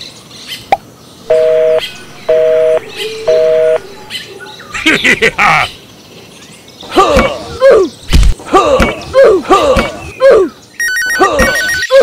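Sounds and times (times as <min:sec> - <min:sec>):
sped-up cartoon laugh: 0:04.7 - 0:05.8, 0:11.1 - 0:12.0.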